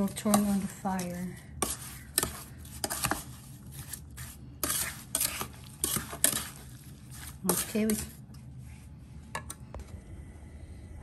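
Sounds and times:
wooden spoon scraping a saucepan: 0.0s - 8.2s.

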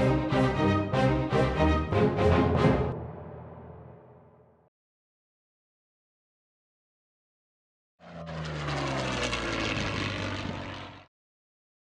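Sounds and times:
propeller aircraft engine drone: 0.0s - 4.7s, 8.0s - 11.1s.

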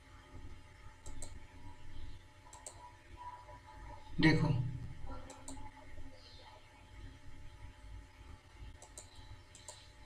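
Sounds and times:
computer mouse clicking: 1.0s - 1.5s, 2.5s - 2.9s, 5.2s - 5.7s, 8.8s - 10.0s.

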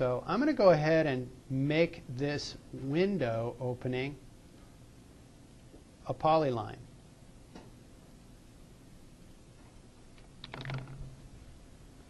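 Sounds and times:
computer keyboard keystrokes: 10.4s - 11.0s.

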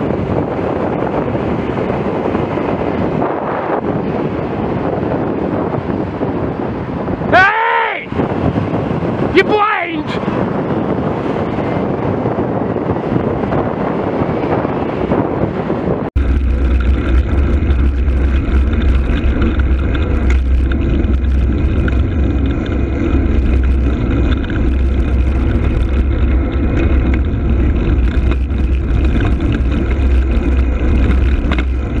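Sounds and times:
road noise: 0.0s - 32.0s
wind rumble on microphone: 0.0s - 32.0s.

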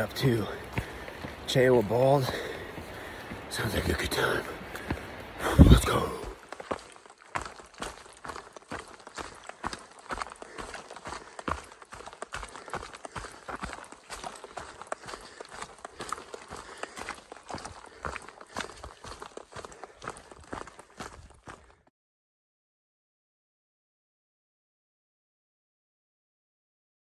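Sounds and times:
footsteps crunching dry leaves: 0.0s - 21.4s.

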